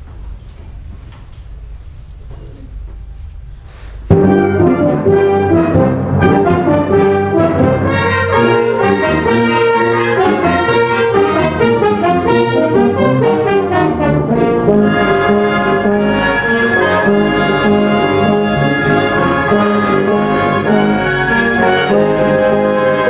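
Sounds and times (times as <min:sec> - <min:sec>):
concert band playing: 0:04.1 - 0:23.0.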